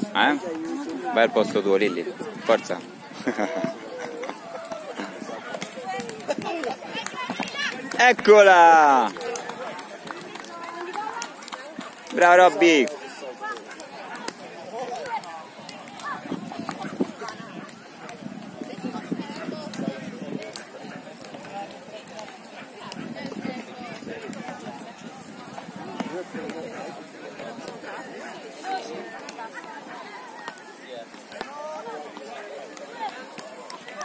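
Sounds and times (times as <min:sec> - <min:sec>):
people talking and calling out: 0:00.0 - 0:34.0.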